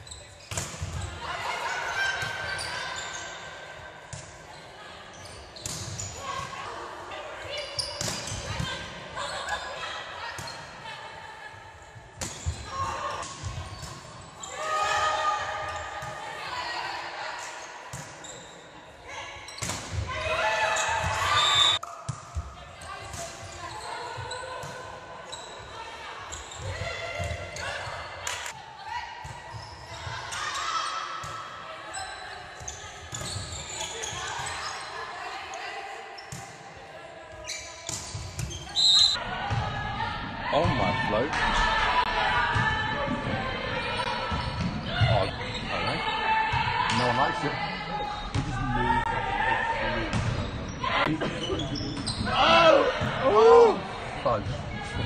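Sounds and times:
spectators shouting: 52.3 - 53.9.

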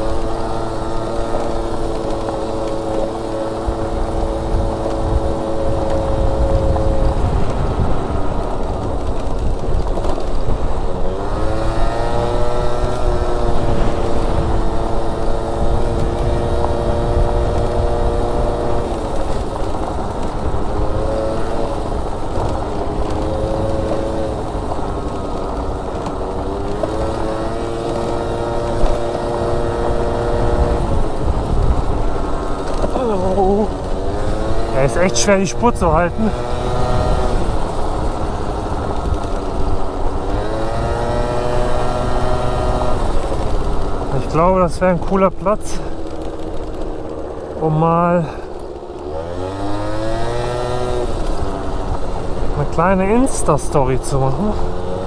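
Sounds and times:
low rumble of wind and bumps: 0.0 - 55.0
scooter engine revving: 0.0 - 55.0.

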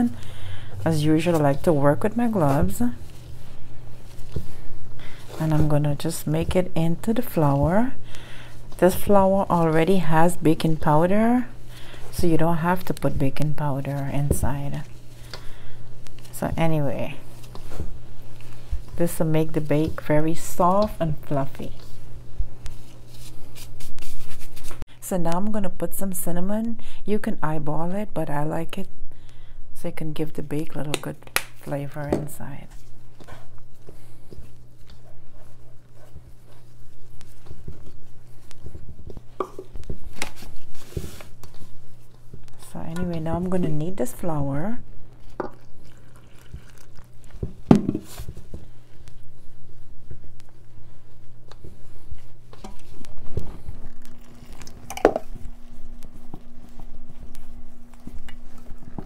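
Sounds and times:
gloved hands rubbing butter into flour: 0.0 - 24.8, 32.4 - 59.0
dough kneading squishes: 0.0 - 25.2, 30.1 - 59.0.

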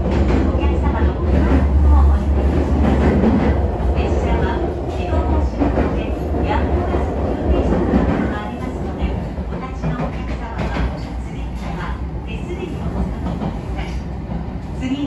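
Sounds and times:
train interior rumble: 0.0 - 15.0.

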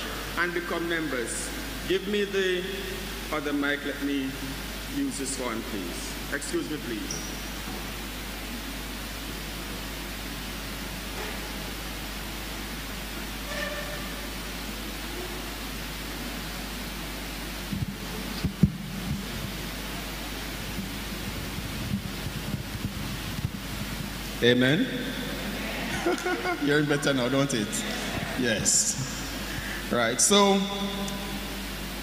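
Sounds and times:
sound system hiss: 0.0 - 32.0.

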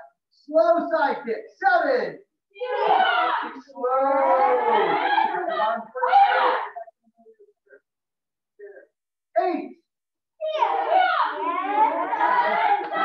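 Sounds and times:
people shouting kiai yells: 2.6 - 6.8.

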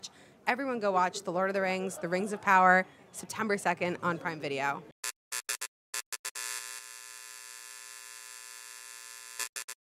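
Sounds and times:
electric buzz: 5.3 - 9.8.

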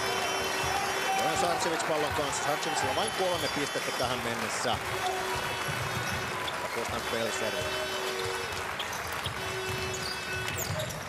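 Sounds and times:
crowd noise: 0.0 - 11.0
ball bouncing on hardwood court: 5.3 - 7.9.

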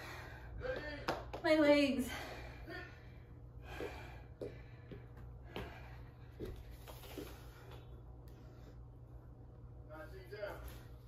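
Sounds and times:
woman breathing hard: 0.0 - 0.8, 2.0 - 9.0.

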